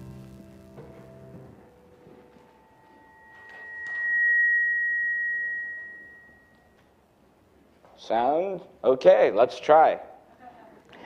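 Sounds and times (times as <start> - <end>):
microphone feedback whistle: 2.5 - 6.9.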